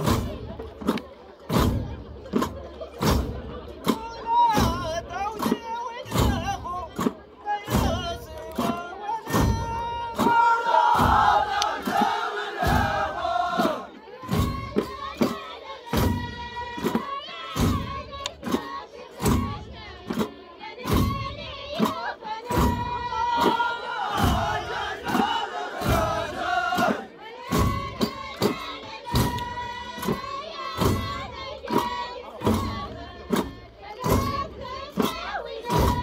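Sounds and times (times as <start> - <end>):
frame drum strokes: 0.0 - 36.0
men chanting in chorus: 10.2 - 13.9, 23.4 - 27.1.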